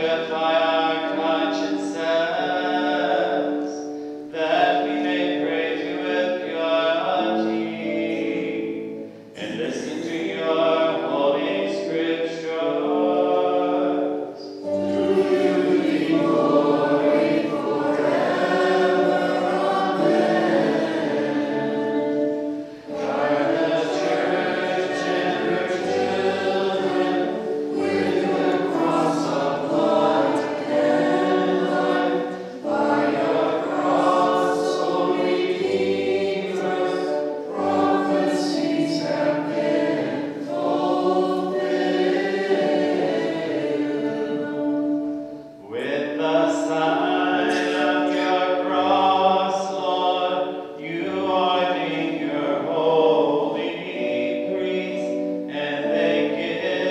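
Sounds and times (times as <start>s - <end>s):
group singing a hymn: 0.0s - 56.9s.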